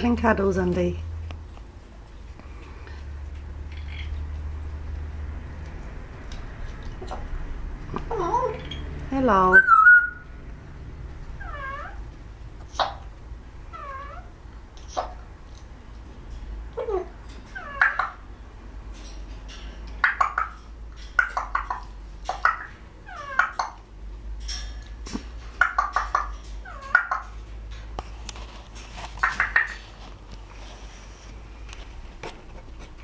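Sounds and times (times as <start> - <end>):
parrot calls: 9.5 - 10.3, 11.4 - 12.1, 12.7 - 15.3, 16.8 - 18.3, 20.0 - 20.6, 21.2 - 23.8, 25.6 - 27.4, 29.2 - 29.8.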